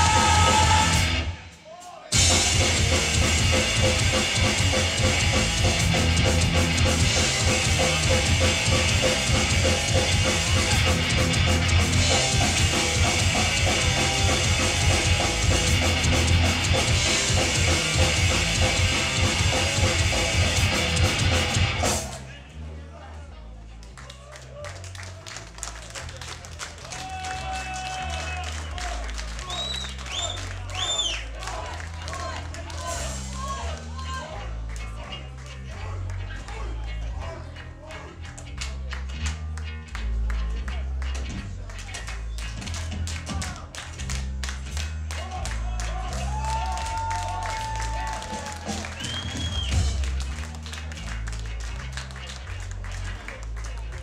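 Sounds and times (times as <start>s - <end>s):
shouted vocal: 0.0s - 1.4s, 45.2s - 48.9s
punk band playing live: 0.0s - 22.3s, 25.6s - 33.7s, 38.2s - 54.0s
crowd noise and voices: 0.0s - 54.0s.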